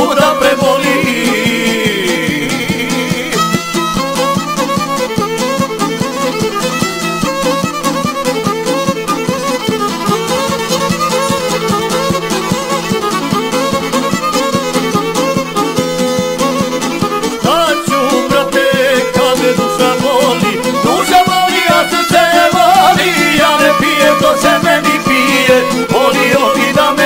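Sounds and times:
fiddle melody: 0.0 - 27.0
rhythmic folk accompaniment: 0.0 - 27.0.

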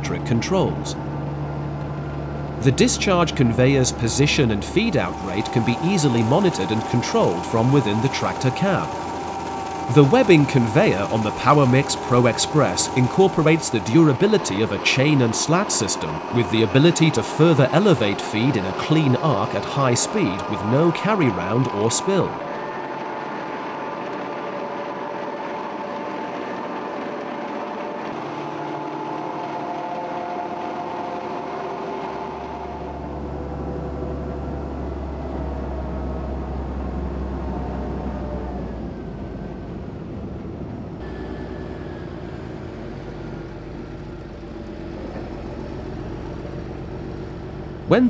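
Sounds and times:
deep engine hum: 0.0 - 48.0
tractor engine running: 0.0 - 48.0.

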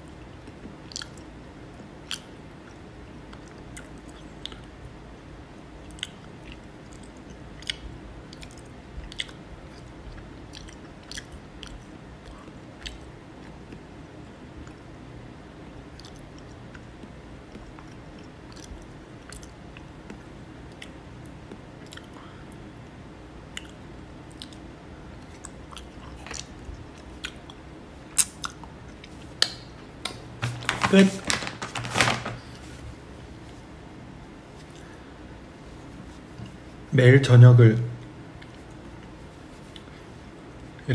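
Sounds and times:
person chewing: 0.9 - 1.3, 5.8 - 13.9, 23.5 - 30.2
objects clicking and crinkling: 29.5 - 32.8
person speaking: 30.0 - 32.9.

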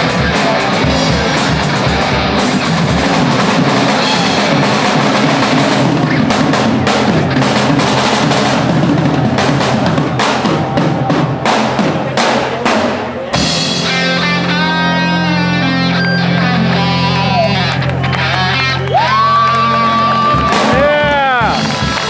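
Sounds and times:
drum kit played hard: 0.0 - 17.4, 19.8 - 22.0
electric guitar bending notes: 0.0 - 22.0.

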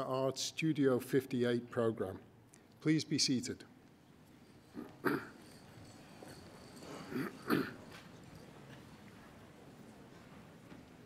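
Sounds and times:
faint hall noise: 0.0 - 11.0
throat clearing: 4.8 - 5.4, 6.9 - 7.9.

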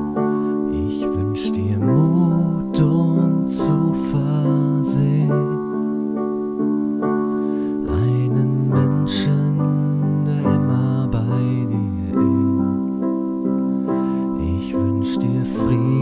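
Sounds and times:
sustained keyboard chords: 0.0 - 16.0.

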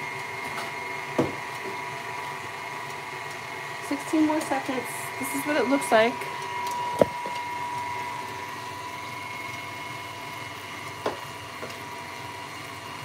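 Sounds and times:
syrup boiling in saucepan: 0.0 - 13.0.

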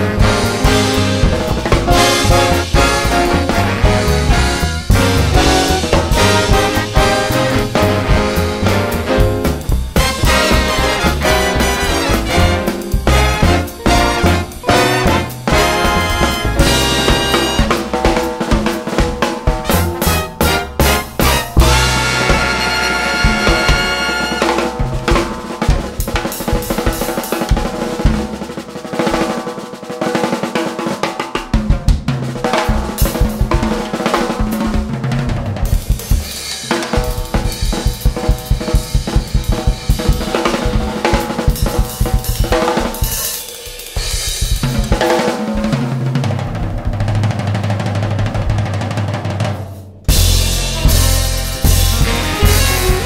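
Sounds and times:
jazz drum kit solo: 0.0 - 53.0.

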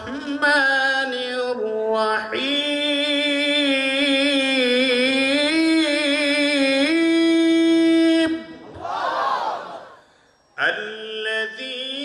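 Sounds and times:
breath: 10.0 - 10.5
man chanting through microphone: 10.6 - 12.0.

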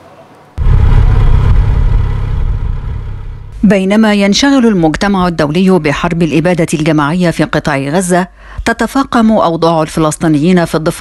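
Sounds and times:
loud low outdoor rumble: 0.6 - 6.7.

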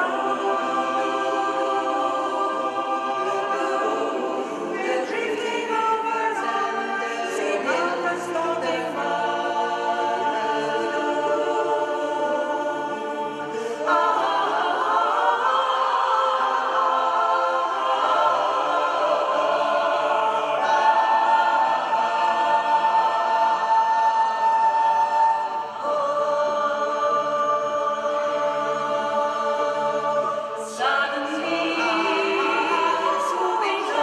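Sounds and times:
mixed choir singing a cappella: 0.0 - 34.0.

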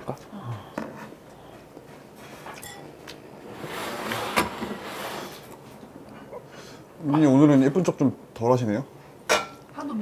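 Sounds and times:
chopsticks clinking against dishes: 2.6 - 2.9.

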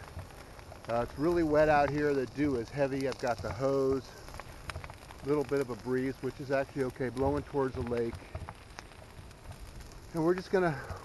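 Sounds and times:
brush pile burning with crackles: 0.0 - 11.0.

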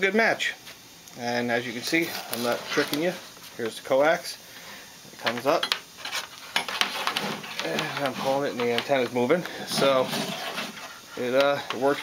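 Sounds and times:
cable clicking and rustling: 6.1 - 9.9.

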